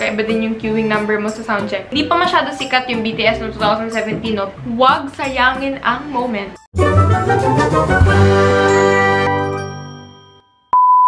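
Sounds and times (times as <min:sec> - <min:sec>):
ringing music chord: 0:06.8 - 0:10.6.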